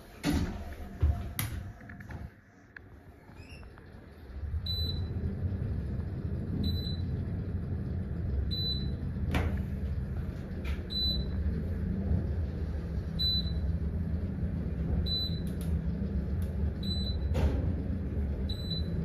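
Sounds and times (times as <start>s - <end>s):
elevator rumble: 0.0s - 19.0s.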